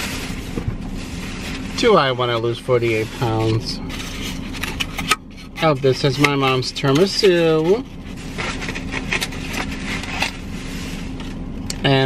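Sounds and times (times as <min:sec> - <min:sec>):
foam container rubbing and squeaking: 0:00.0 - 0:11.3.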